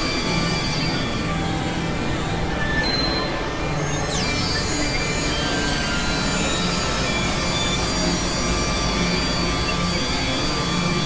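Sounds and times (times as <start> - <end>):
noisy synthesizer drone: 3.2 - 11.0.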